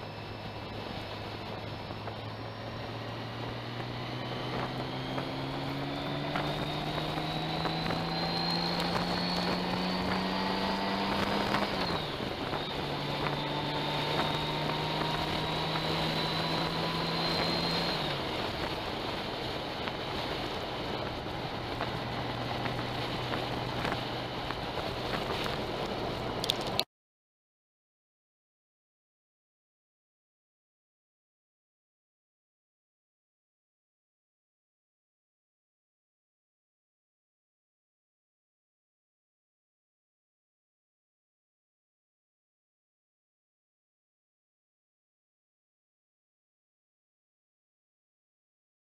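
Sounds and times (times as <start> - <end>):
motorcycle engine accelerating: 0.0 - 26.8
wind noise on microphone: 0.2 - 26.8.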